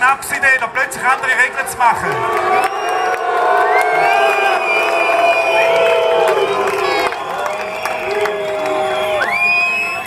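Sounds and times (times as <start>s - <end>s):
crowd shouting: 1.3s - 10.0s.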